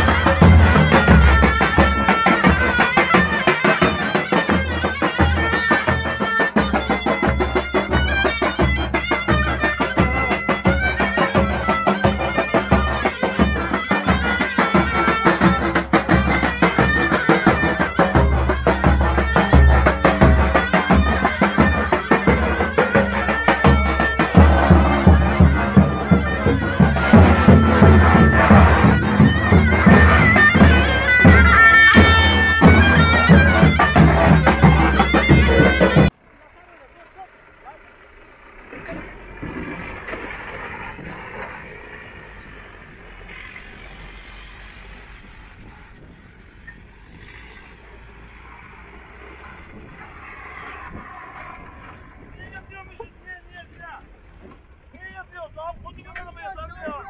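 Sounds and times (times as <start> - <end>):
wind instrument playing folk tune: 0.0 - 36.2
faint pickup truck engine: 0.0 - 57.0.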